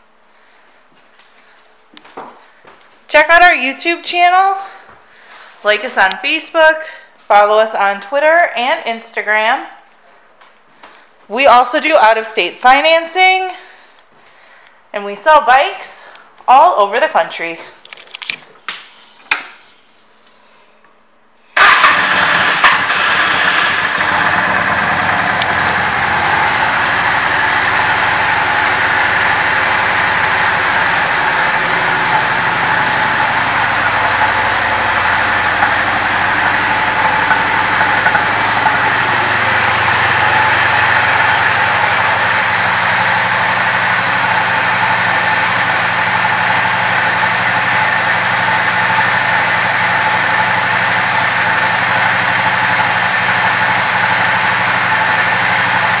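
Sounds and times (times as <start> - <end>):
motorcycle engine idling: 21.6 - 56.0.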